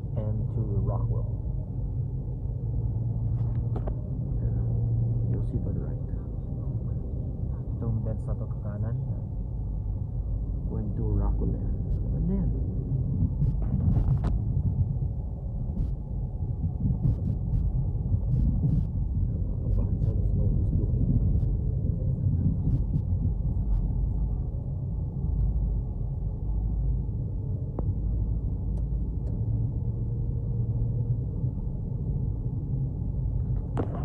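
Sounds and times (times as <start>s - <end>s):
road and engine rumble in car: 0.0s - 34.0s.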